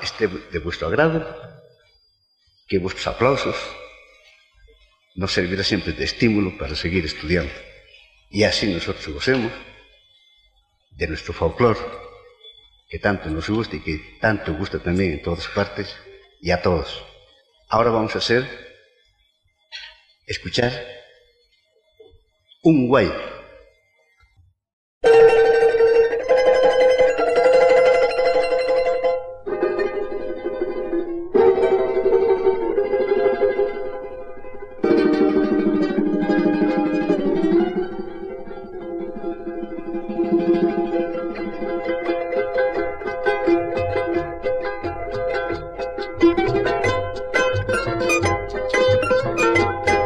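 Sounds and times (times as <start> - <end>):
charangos strumming and plucking: 0.0 - 19.1, 25.0 - 50.0.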